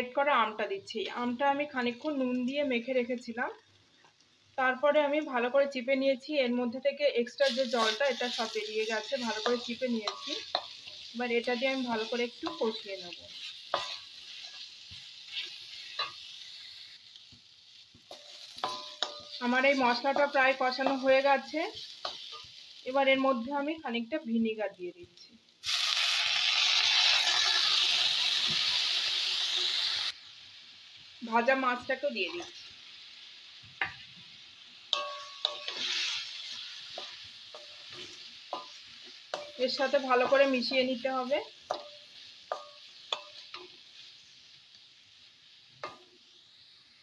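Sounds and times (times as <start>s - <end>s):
oil sizzling: 0.0s - 47.0s
spatula scraping a wok: 7.4s - 22.8s, 32.2s - 32.7s, 34.9s - 44.5s.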